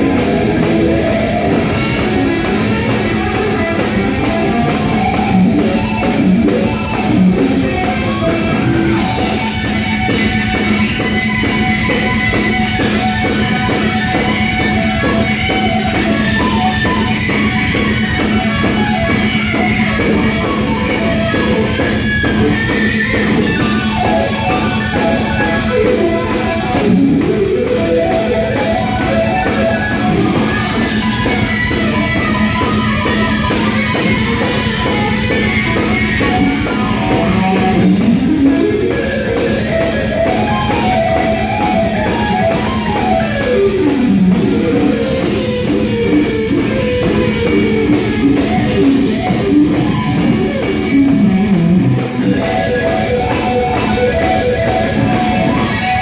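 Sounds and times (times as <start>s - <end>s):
electric guitar melodic runs: 0.0s - 56.0s.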